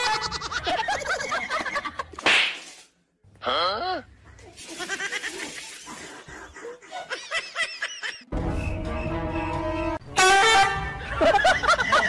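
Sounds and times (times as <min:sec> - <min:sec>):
hand swish and smack: 0:02.2 - 0:02.7.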